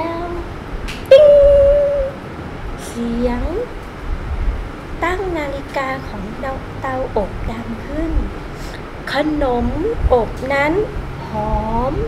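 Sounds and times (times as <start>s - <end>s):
woman imitating timer ding: 1.1s - 2.2s.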